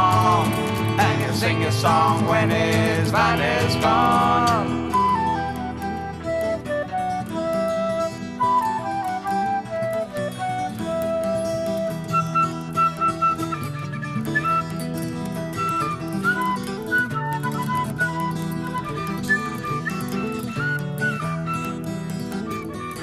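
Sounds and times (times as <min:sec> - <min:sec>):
folk rock instrumental music: 0:00.0 - 0:23.0.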